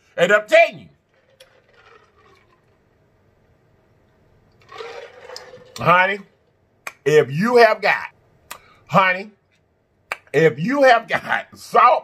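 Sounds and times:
sipping and swallowing a drink: 1.1 - 2.8, 4.6 - 5.8.

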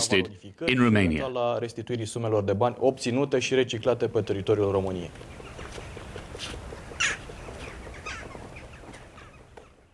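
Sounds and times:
birds calling: 4.2 - 9.9.

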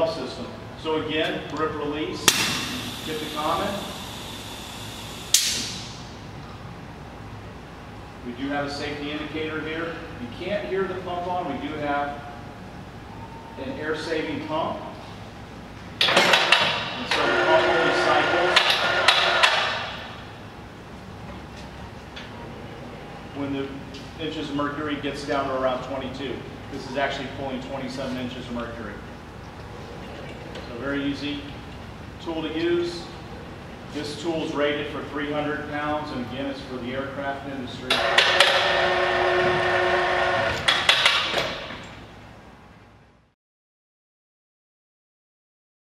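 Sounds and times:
vacuum pump hissing: 2.5 - 5.8.

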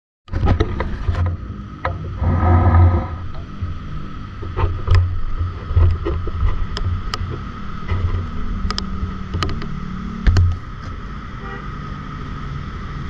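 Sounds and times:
microphone handling rumble: 0.3 - 7.2
sharp clicks and knocks: 4.4 - 9.7, 10.3 - 11.0.

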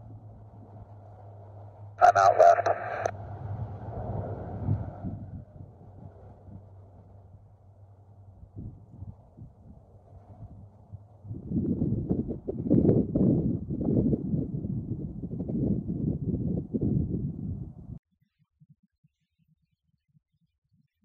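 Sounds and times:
faint low engine drone: 0.0 - 18.0
wind buffeting microphone: 3.1 - 18.0.

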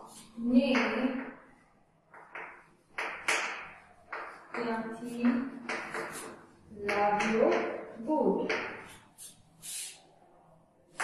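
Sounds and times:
chalk strokes on chalkboard: 5.0 - 6.5, 8.8 - 10.1.

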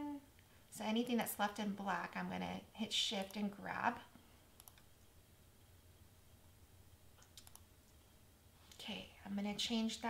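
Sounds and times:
computer mouse clicks: 3.2 - 3.4, 4.6 - 4.9, 7.2 - 8.0.

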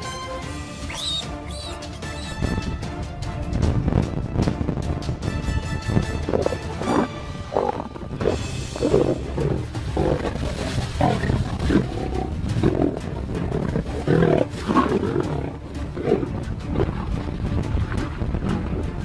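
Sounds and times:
background music: 0.0 - 19.0
lion growling and roaring: 6.1 - 19.0.

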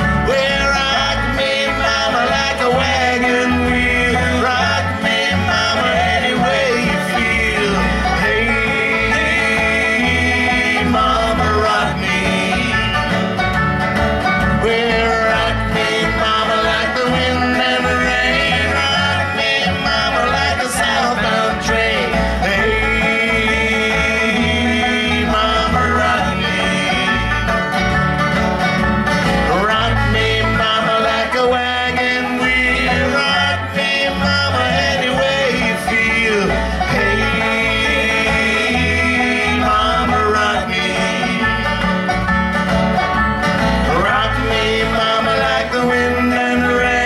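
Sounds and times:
acoustic guitar and bass: 0.0 - 47.0
banjo picking: 0.0 - 47.0.

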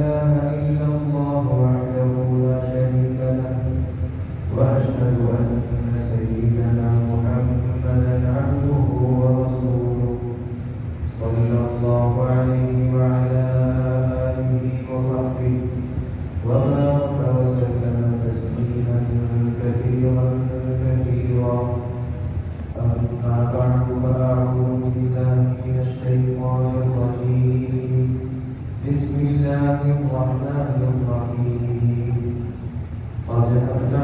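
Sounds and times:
man chanting: 0.0 - 34.0.

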